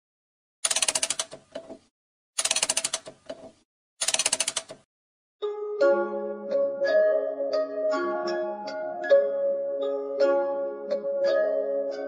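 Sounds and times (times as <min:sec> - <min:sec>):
rapid clattering clicks: 0:00.6 - 0:01.6, 0:02.4 - 0:04.9.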